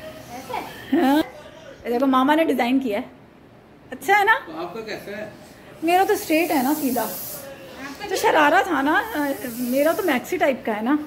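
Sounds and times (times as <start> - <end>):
short hiss: 6.1 - 7.6, 9.1 - 10.3.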